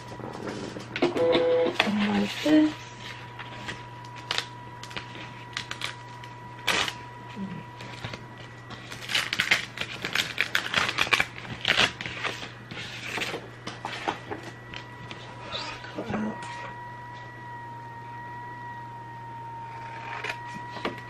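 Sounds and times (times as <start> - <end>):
steady low hum: 0.0 - 21.0
vinyl sheet crackling and rustling: 1.7 - 15.3.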